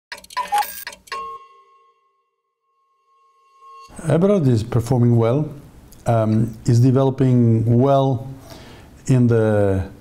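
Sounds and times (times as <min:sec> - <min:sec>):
electronic ticks and clicks: 0:00.1 - 0:01.4
ringing chime-like tone: 0:00.4 - 0:04.6.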